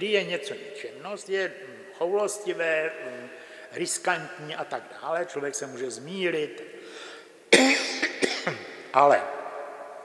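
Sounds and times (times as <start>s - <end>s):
man coughing: 7.5s - 8.6s.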